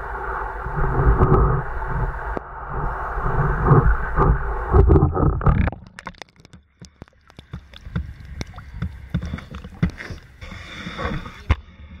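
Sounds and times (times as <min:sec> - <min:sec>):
low rumbles: 0:00.0 - 0:06.4
water sloshing against boat hull: 0:02.8 - 0:11.6.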